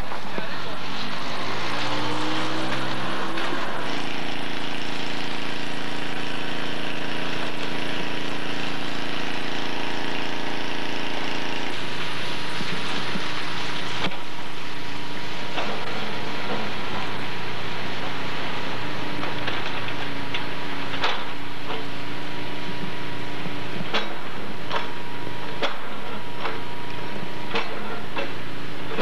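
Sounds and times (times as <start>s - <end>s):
vehicle engine running: 0.0s - 29.0s.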